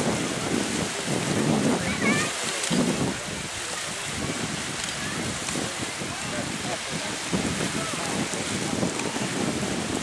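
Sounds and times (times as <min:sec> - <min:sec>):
faint voices murmuring: 0:00.0 - 0:10.0
water washing on shore: 0:00.0 - 0:10.0
wind: 0:00.0 - 0:10.0.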